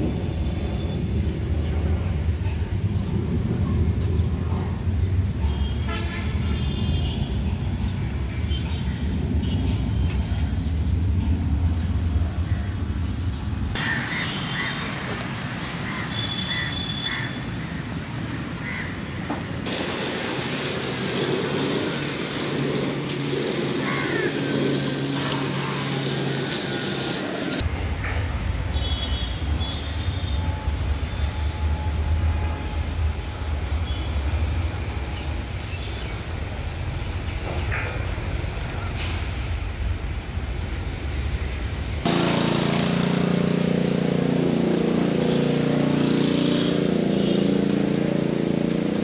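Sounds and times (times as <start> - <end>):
low traffic rumble: 0.0 - 49.0
crows cawing: 13.8 - 14.8, 15.8 - 17.4, 18.6 - 19.0, 23.8 - 24.5.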